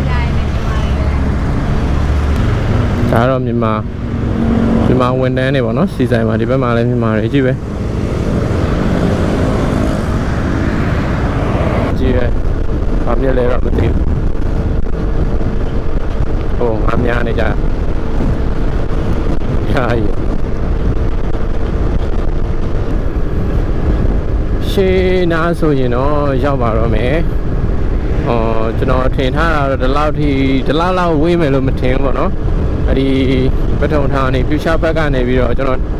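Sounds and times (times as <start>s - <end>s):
motorbike engine rumble: 0.0s - 35.9s
road noise: 0.0s - 35.9s
wind on microphone: 0.0s - 35.9s.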